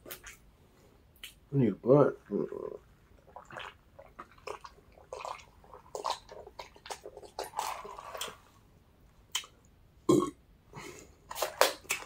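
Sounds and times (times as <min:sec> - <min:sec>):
mouth clicks and smacks: 0:00.0 - 0:00.5, 0:01.1 - 0:01.5, 0:09.3 - 0:09.7
person burping: 0:10.1 - 0:10.4.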